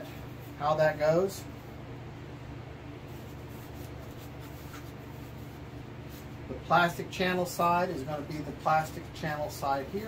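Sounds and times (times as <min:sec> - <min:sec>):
low room hum: 0:00.0 - 0:10.0
foam parts rubbing: 0:03.0 - 0:06.4.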